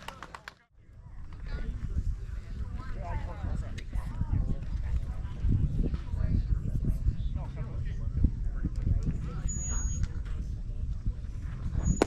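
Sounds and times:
wind on microphone: 0.8s - 12.0s.

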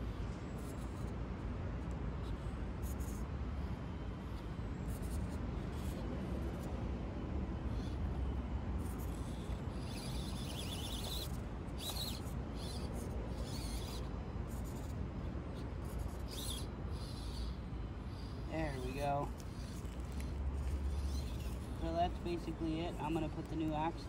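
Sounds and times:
small electric motor whining: 0.0s - 1.2s, 1.8s - 24.0s.

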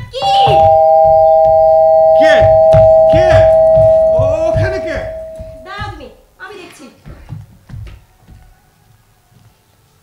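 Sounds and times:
held two-note tone: 0.2s - 5.7s.

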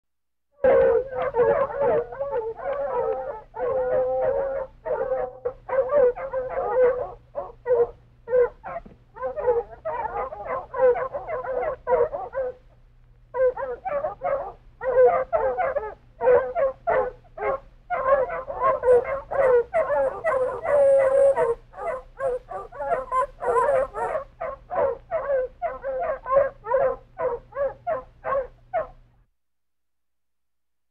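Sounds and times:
pack of hounds baying: 0.6s - 12.7s, 13.3s - 29.0s.

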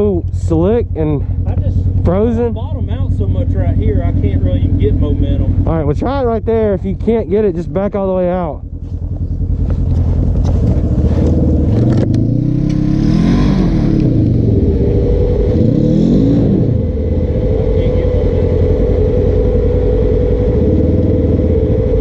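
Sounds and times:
off-road vehicle engine revving: 0.0s - 22.0s.

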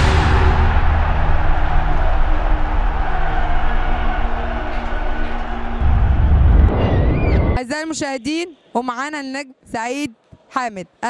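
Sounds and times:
deep bass rumble: 0.0s - 7.6s
rumbling drone: 0.0s - 7.6s.

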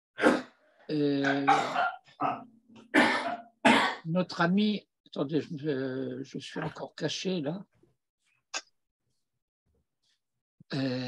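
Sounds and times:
person coughing: 1.1s - 4.1s.

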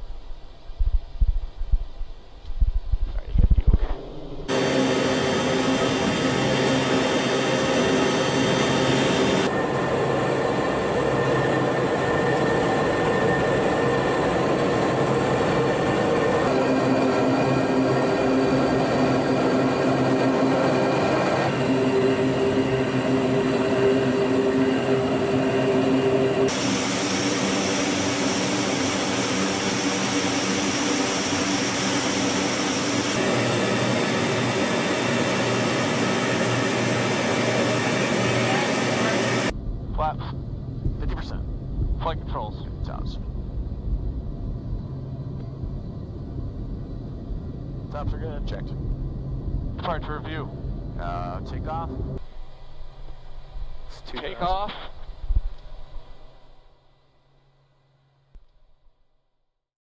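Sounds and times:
turboprop engines droning: 0.0s - 58.5s.

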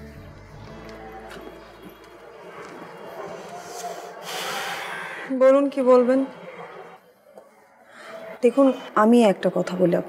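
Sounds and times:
person inhaling loudly: 3.8s - 5.3s.

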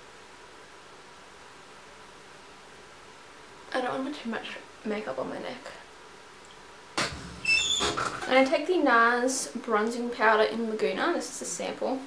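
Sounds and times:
brief high squeaks: 7.4s - 8.2s.

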